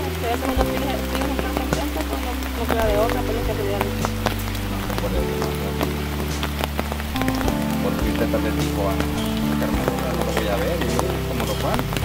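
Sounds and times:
music of long held notes: 0.0 - 12.0.

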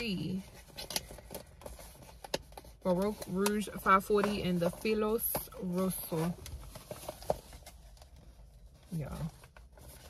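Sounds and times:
faint clicks and rustles: 0.0 - 10.0.

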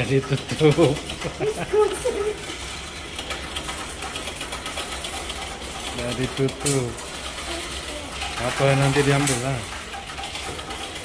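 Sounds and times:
coins rattling through machine: 0.0 - 11.0.

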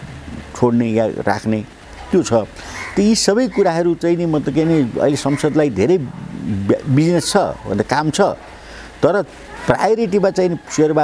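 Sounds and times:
man speaking: 0.3 - 11.0.

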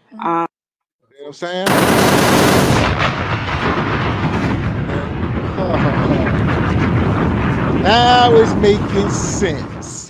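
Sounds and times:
crackling rumbling explosion noise: 1.7 - 10.0.

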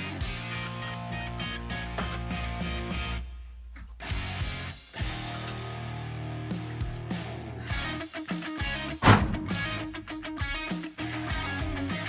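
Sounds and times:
guitar-led background music: 0.0 - 3.2, 4.0 - 12.0.

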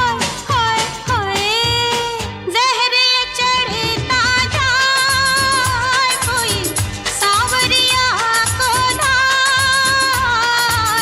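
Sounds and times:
percussion beat: 3.9 - 11.0.

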